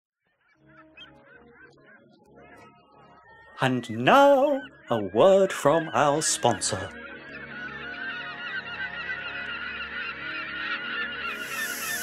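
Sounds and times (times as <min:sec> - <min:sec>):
faint gull squawks: 0:00.6 - 0:12.0
low steady drone: 0:11.2 - 0:12.0.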